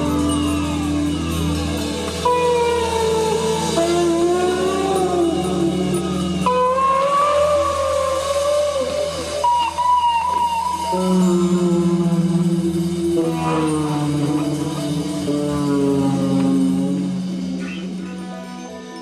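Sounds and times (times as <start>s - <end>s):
low bass drone: 0.0s - 18.8s
electric guitar sustained notes: 0.0s - 19.0s.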